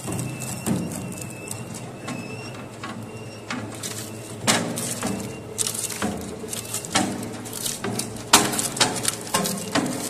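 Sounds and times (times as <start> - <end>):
metal shredder humming: 0.0 - 10.0.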